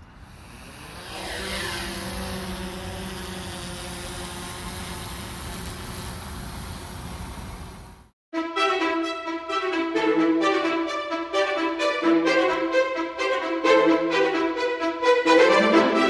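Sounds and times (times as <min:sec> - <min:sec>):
drone propellers whining: 0:00.0 - 0:07.9.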